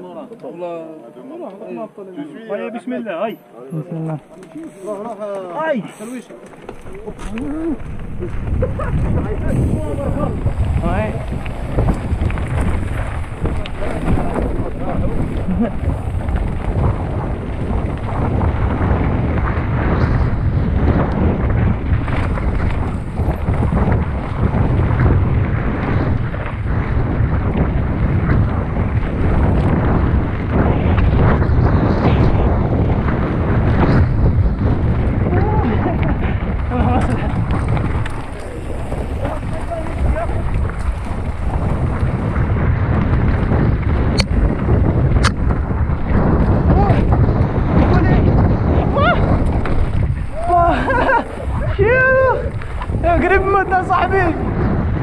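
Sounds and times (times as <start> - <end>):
faint voices: 0.0 - 11.7, 35.2 - 41.1
wind buffeting the microphone: 3.8 - 55.0
steady low rumble: 6.6 - 55.0.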